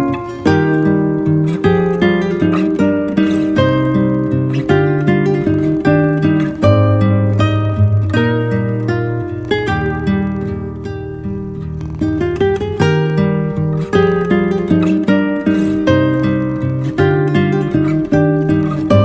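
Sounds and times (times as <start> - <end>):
acoustic guitar melody: 0.0 - 19.0.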